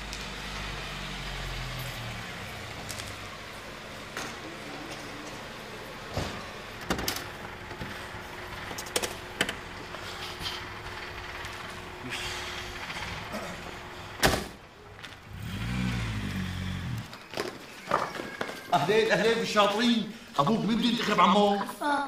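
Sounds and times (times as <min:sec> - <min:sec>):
car door slam: 0:14.2 - 0:14.6.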